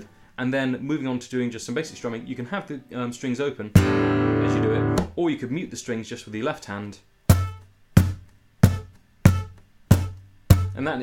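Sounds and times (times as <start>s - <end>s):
hand striking guitar body: 3.8s - 4.2s, 4.8s - 5.2s, 7.3s - 10.8s.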